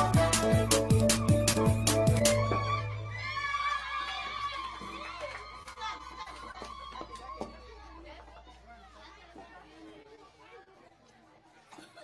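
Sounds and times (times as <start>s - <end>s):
chatter of many voices: 5.8s - 12.0s.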